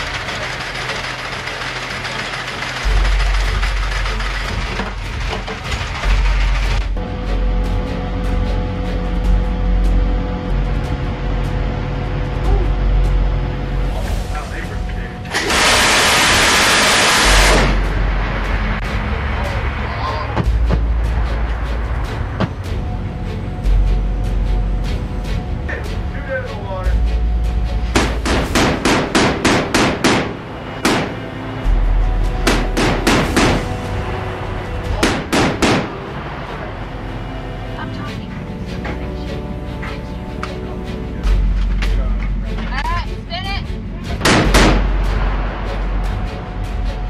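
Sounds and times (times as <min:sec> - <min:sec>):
background music: 0:00.0 - 0:47.0.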